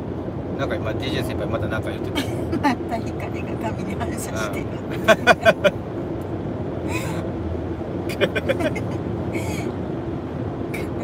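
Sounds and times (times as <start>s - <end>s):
road noise inside car: 0.0s - 11.0s
man laughing: 4.9s - 5.7s, 8.1s - 9.0s.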